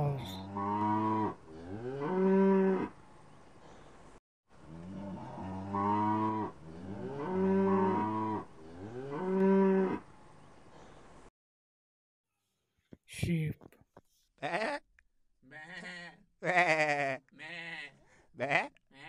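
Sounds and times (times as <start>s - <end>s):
cows mooing: 4.7s - 10.0s.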